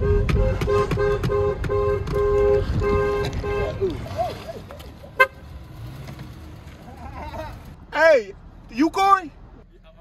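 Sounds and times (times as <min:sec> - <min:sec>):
car horn tap: 0:00.0 - 0:03.7
low street traffic: 0:00.0 - 0:10.0.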